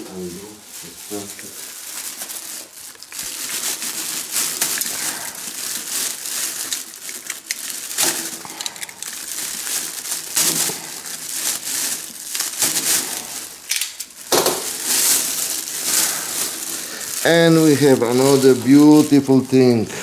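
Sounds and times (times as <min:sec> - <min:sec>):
plastic bag crinkling: 0:00.1 - 0:20.0.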